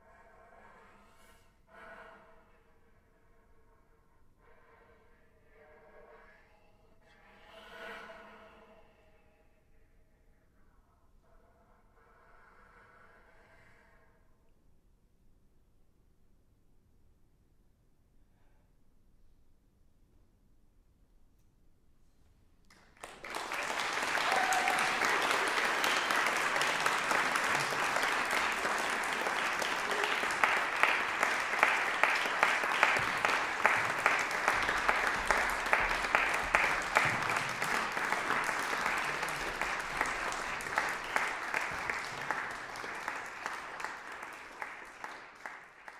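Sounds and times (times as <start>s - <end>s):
audience applause: 22.7s - 45.9s
sharp individual claps: 22.7s - 45.9s.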